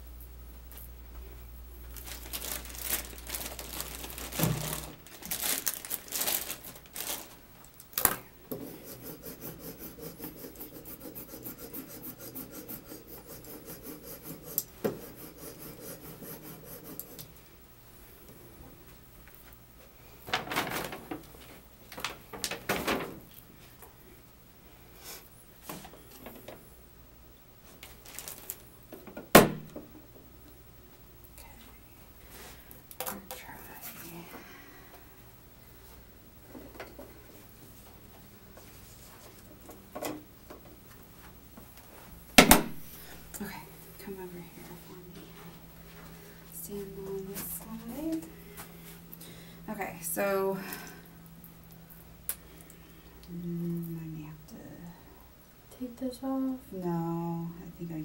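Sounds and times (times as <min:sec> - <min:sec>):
rubbing and scraping handling: 0:08.5 - 0:17.3.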